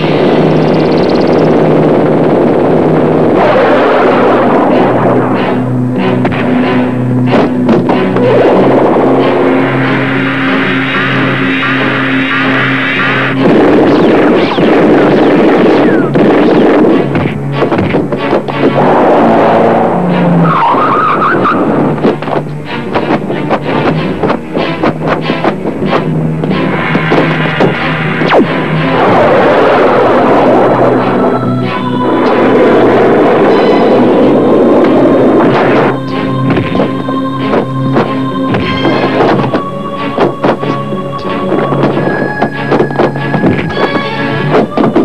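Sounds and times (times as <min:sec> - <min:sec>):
dense wash of noise: 0:00.0 - 0:43.5
trailer music with low tones: 0:00.0 - 0:45.0
sweeping effect: 0:03.4 - 0:45.0.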